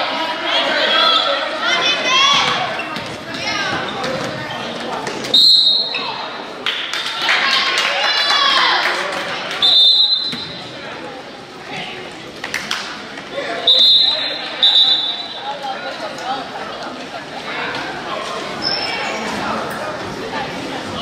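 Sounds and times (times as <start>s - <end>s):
spectators shouting in gym: 0.0s - 12.1s
sneakers squeaking on floor: 2.2s - 6.3s, 9.7s - 10.8s, 18.6s - 19.4s
basketball bouncing on court: 2.3s - 4.5s.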